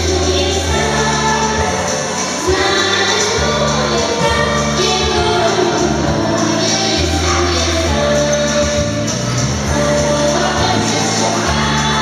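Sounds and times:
girls singing together: 0.0s - 12.0s
musical backing with bass line: 0.0s - 12.0s.

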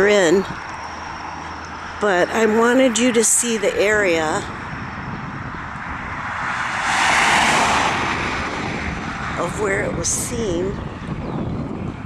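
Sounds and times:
car driving past: 5.2s - 9.5s.

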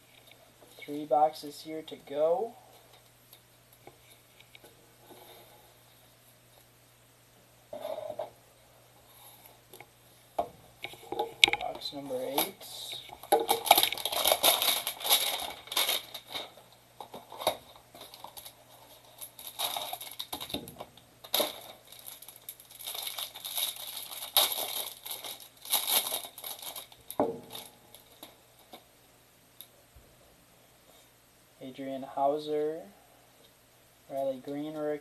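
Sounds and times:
plastic wrapper tearing and crinkling: 12.2s - 28.8s.

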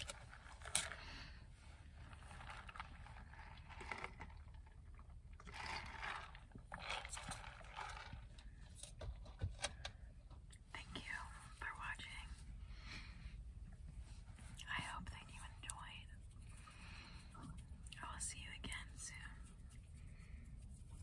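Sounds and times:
woman whispering: 10.7s - 12.5s, 14.6s - 16.2s, 17.4s - 19.6s.

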